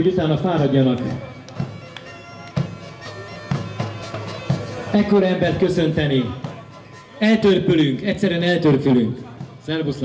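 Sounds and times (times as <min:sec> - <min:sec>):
bagpipe playing: 0:00.4 - 0:08.5
frame drum beats: 0:00.4 - 0:10.0.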